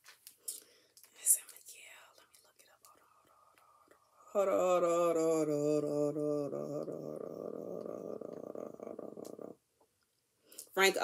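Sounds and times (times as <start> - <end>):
woman whispering and muttering: 1.1 - 9.6
mouth clicks: 6.8 - 9.6.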